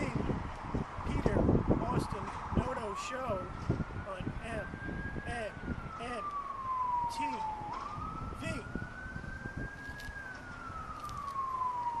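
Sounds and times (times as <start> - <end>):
siren wailing: 1.4 - 12.0.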